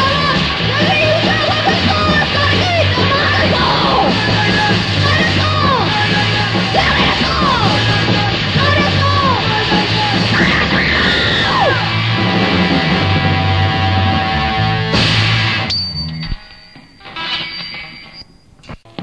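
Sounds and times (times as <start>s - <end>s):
yelled vocals: 0.0s - 15.6s
hardcore punk band playing: 0.0s - 15.7s.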